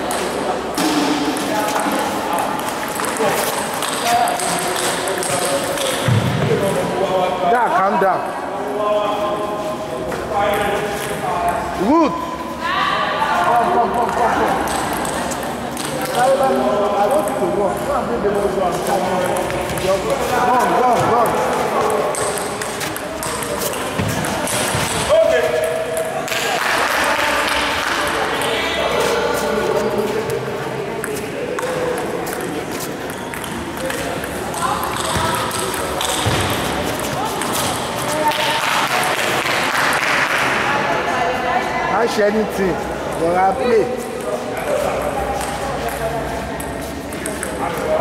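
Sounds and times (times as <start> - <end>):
people talking: 0.0 - 48.0
table tennis balls clicking: 1.8 - 6.1, 14.0 - 16.4, 21.1 - 25.1, 31.0 - 40.1, 46.6 - 47.9.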